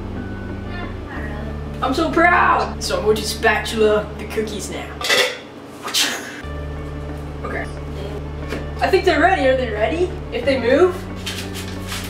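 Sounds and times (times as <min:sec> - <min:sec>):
background music: 0:00.0 - 0:05.2, 0:06.4 - 0:12.0.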